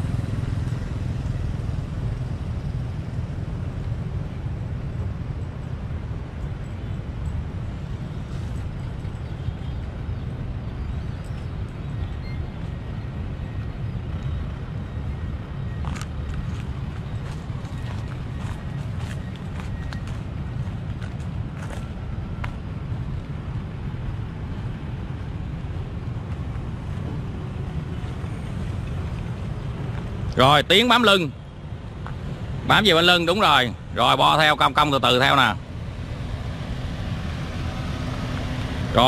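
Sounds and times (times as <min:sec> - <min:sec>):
low outdoor rumble: 0:00.0 - 0:39.0.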